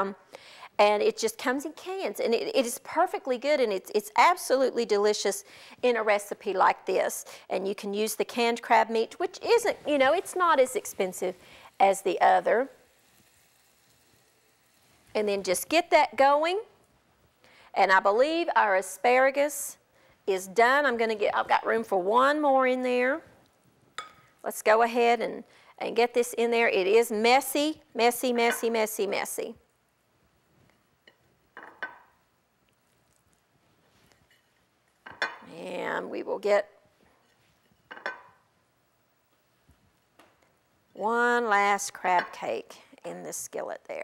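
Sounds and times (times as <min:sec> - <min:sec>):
food frying in oil: 0:09.6 - 0:16.0.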